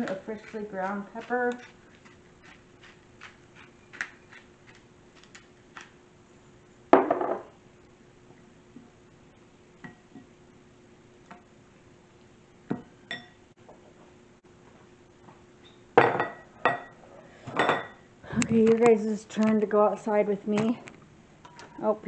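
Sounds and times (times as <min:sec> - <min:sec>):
glass bowl clinking: 0:12.7 - 0:13.4, 0:17.6 - 0:18.0.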